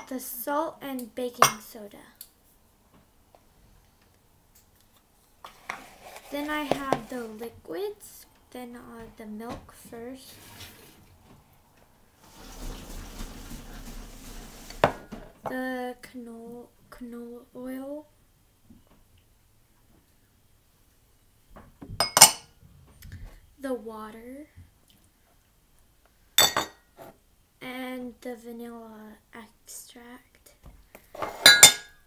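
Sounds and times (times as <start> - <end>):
person speaking: 6.0 - 10.5
milk pouring into plastic bowl: 12.2 - 15.0
glass container clinking on table: 22.0 - 22.5, 26.4 - 26.8, 31.2 - 32.0.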